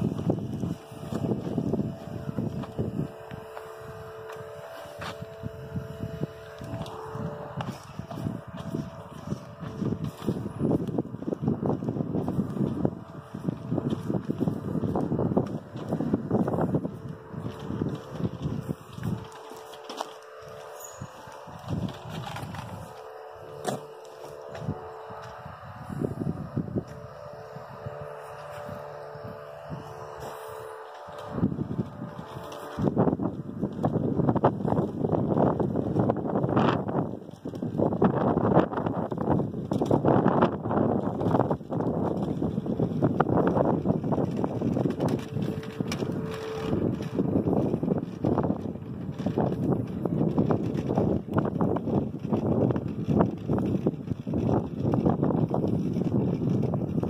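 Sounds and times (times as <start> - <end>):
faint steady hum: 0.0 - 57.0
wind buffeting microphone: 0.0 - 57.0.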